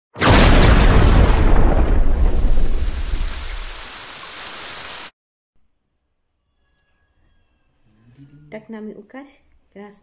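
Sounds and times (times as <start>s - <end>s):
thunder rumble: 0.2s - 3.8s
steady rain hiss: 2.4s - 5.1s.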